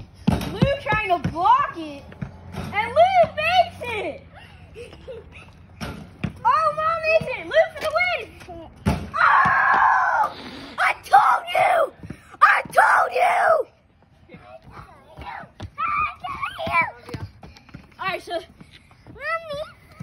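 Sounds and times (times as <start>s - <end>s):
children shouting and screaming: 6.4s - 13.9s, 14.7s - 17.5s.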